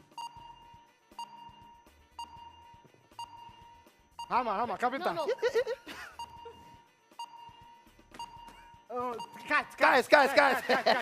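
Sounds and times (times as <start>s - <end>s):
steady electronic beep: 0.0s - 9.7s.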